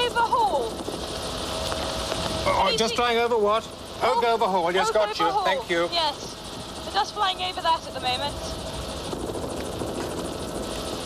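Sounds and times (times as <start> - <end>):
helicopter rotor and engine: 0.0 - 11.0.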